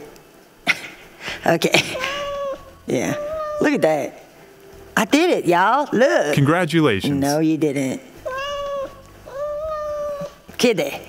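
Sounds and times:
cat meowing: 2.0 - 3.8, 8.3 - 10.4.

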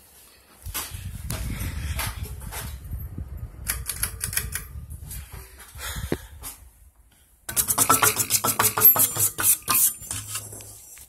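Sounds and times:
ceiling fan air buffeting microphone: 0.5 - 6.8.

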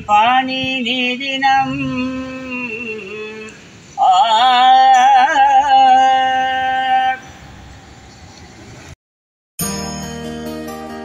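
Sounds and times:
man chanting: 0.0 - 7.3
faint outdoor background: 0.0 - 9.0, 9.6 - 11.0.

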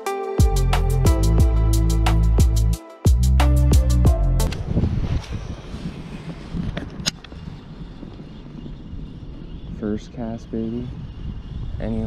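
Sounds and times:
intro music: 0.0 - 4.7
wind noise on microphone: 4.0 - 12.0.

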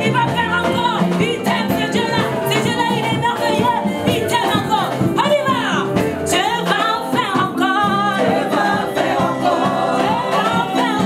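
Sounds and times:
amplified band playing: 0.0 - 11.0
woman singing into microphone: 0.0 - 11.0
backing singers: 6.3 - 11.0.

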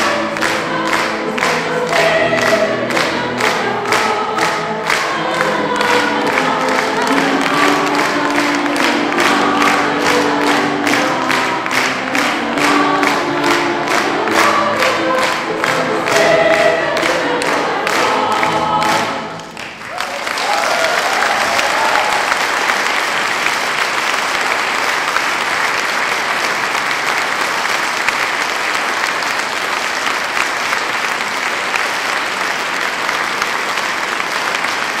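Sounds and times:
choir singing: 0.0 - 23.3
audience applause: 0.0 - 35.0.

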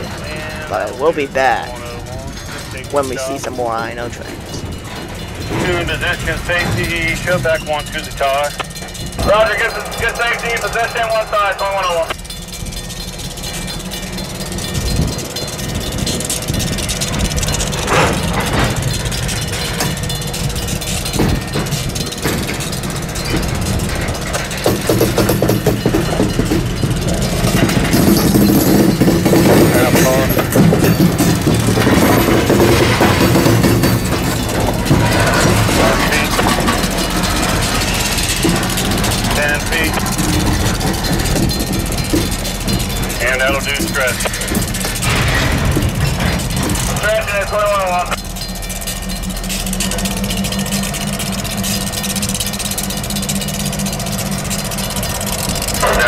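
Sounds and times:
train wheels clattering on rails: 0.0 - 56.0.

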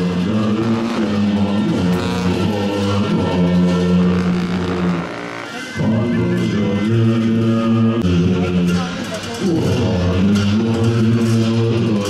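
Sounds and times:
sustained low ritual tones: 0.0 - 12.0.

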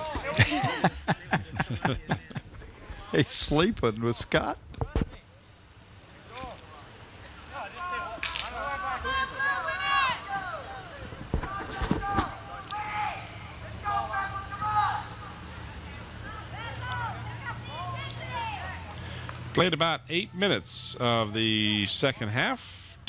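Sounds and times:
voices shouting and calling out: 0.0 - 22.6.

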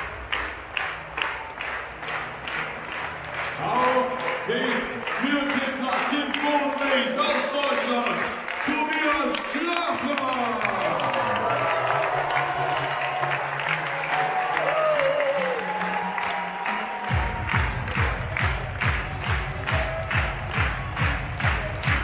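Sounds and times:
crowd applauding: 0.0 - 22.0
music: 0.0 - 22.0
heavy bass beat: 17.1 - 22.0.

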